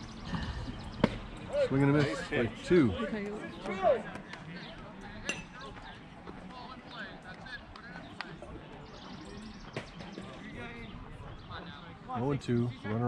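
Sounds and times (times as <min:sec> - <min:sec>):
distant voices chattering: 0:00.0 - 0:13.0.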